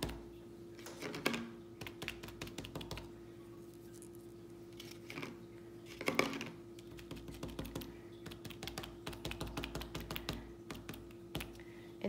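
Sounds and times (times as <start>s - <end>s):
faint steady hum: 0.0s - 12.0s
cotton swabs tapping paper: 1.8s - 3.1s, 6.8s - 11.6s.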